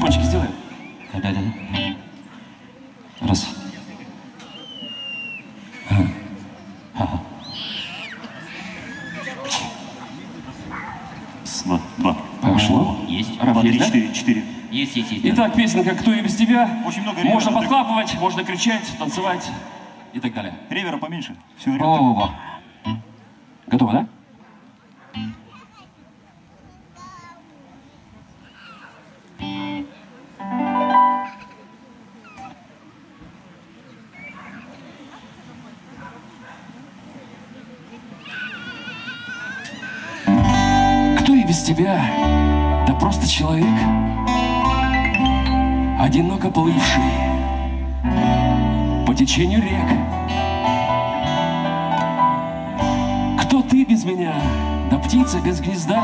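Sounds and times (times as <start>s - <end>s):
electric keyboard chords: 0.0s - 2.3s, 29.4s - 31.8s, 40.4s - 56.0s
faint voices: 0.0s - 20.2s, 21.4s - 56.0s
thin high whistle: 4.4s - 5.9s.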